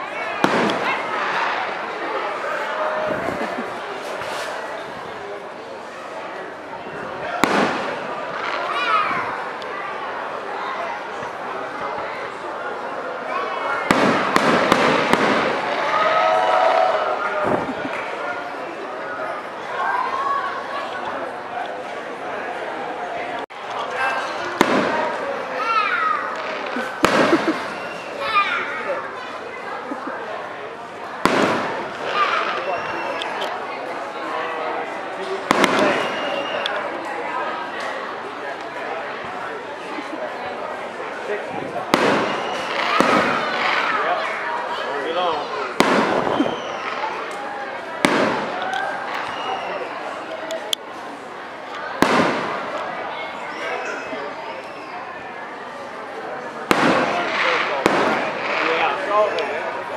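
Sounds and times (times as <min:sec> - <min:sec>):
crowd voices: 0:00.0 - 0:59.9
sharp firework bang: 0:00.4 - 0:01.0, 0:07.4 - 0:08.6, 0:13.9 - 0:15.7, 0:24.6 - 0:25.2, 0:27.0 - 0:27.7, 0:31.2 - 0:32.4, 0:41.9 - 0:43.7, 0:45.8 - 0:46.7, 0:48.0 - 0:48.5, 0:52.0 - 0:52.6, 0:56.7 - 0:58.6.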